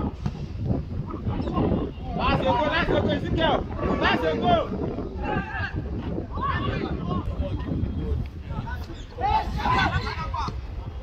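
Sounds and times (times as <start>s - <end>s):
wind rumbling on microphone: 0.0s - 11.0s
players and onlookers shouting: 2.2s - 7.3s, 8.6s - 10.6s.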